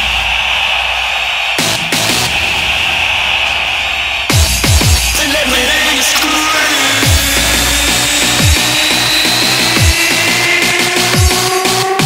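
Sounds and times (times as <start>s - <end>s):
fast bass notes: 4.3s - 12.0s
high held synth note: 6.3s - 12.0s.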